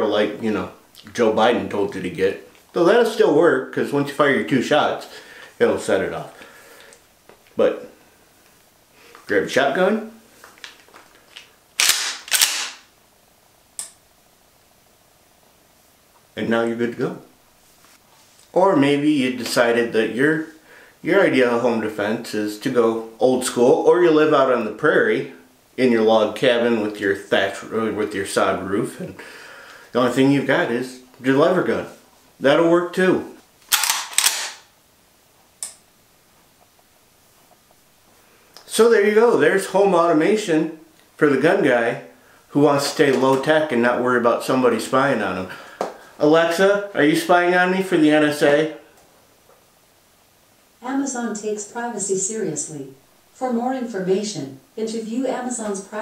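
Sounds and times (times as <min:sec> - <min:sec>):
shotgun handling clicks: 0:11.4 - 0:12.8, 0:33.7 - 0:34.7
rifle action metallic clacks: 0:11.8 - 0:12.8, 0:33.7 - 0:34.7
shotgun being racked: 0:11.8 - 0:12.9, 0:33.7 - 0:34.7.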